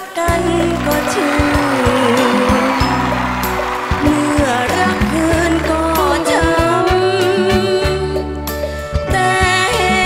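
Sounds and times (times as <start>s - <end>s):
woman singing into microphone: 0.0s - 2.9s, 4.0s - 8.4s, 9.1s - 10.0s
live band backing: 0.0s - 10.0s
drum beats: 0.4s - 8.1s.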